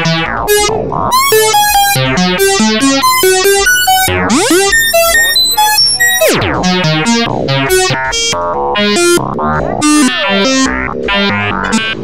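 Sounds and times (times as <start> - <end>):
modular synthesizer sequence: 0.0 - 12.0.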